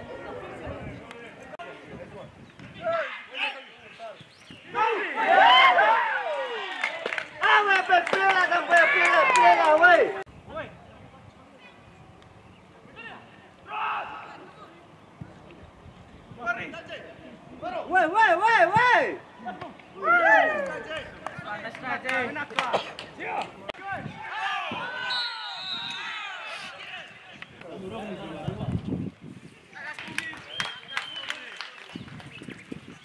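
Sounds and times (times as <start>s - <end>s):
voices shouting outdoors: 0.0s - 28.7s
high whistle: 25.0s - 26.3s.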